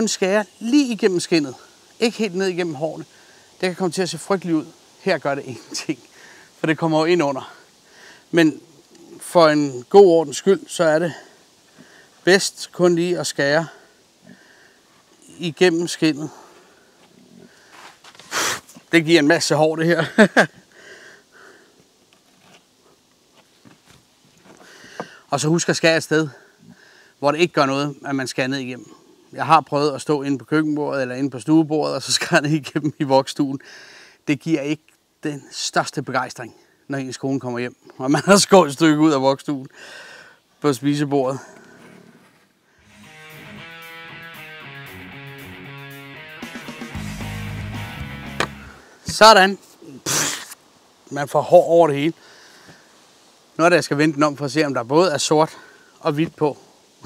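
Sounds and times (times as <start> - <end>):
soft puffs of breath: 3.0 - 3.6, 6.0 - 6.6, 7.4 - 9.2, 11.1 - 12.3, 13.7 - 15.3, 16.2 - 18.8, 20.6 - 21.9, 24.5 - 25.3, 33.6 - 34.2, 39.7 - 40.5, 41.4 - 42.9, 52.2 - 53.4
instrumental guitar music: 42.8 - 48.8.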